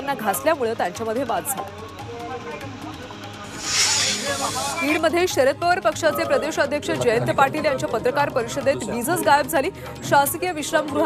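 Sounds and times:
whoosh of hiss: 2.6 - 5.2.

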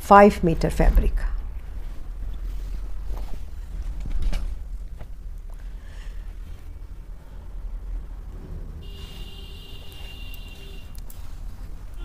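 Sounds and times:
steady low rumble: 0.0 - 12.0
cloth rustling: 1.7 - 7.0, 8.9 - 12.0.

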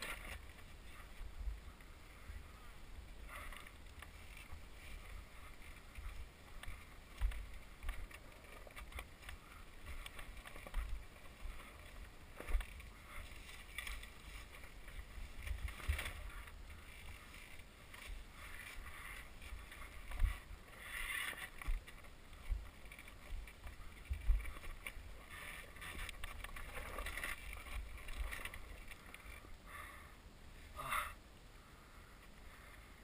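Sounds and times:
muffled wind rumble: 0.0 - 33.0.

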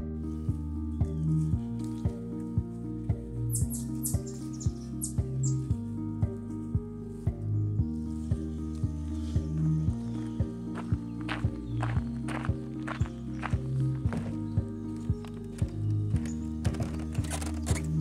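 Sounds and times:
background music with steady beat: 0.0 - 18.0.

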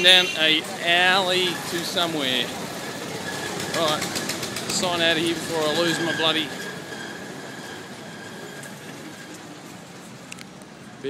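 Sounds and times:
distant engines and road noise: 0.0 - 11.0.

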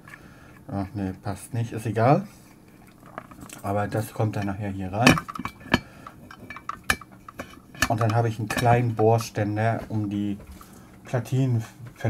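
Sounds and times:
metallic clicks and knocks: 4.3 - 8.9.

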